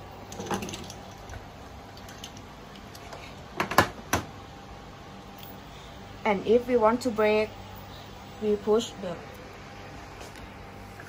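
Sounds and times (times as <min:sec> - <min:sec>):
electric motor hum and whine: 0:00.0 - 0:11.0.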